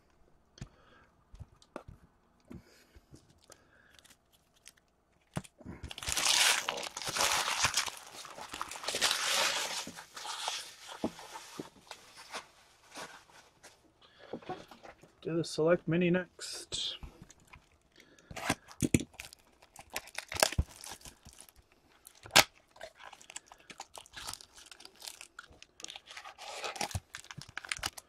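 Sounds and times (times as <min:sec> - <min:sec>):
packaging crinkling and tearing: 0:03.4 - 0:12.4, 0:17.3 - 0:28.0.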